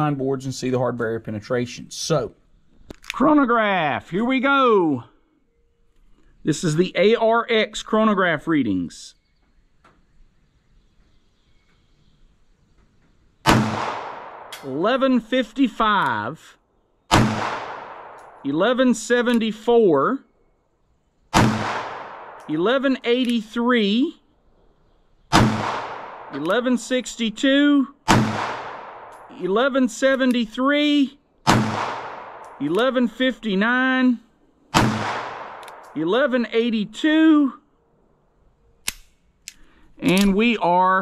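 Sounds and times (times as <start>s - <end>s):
pistol shot: 13.4s - 14.8s, 17.1s - 18.5s, 21.3s - 22.5s, 25.3s - 26.6s, 28.1s - 29.4s, 31.4s - 33.0s, 34.7s - 36.0s.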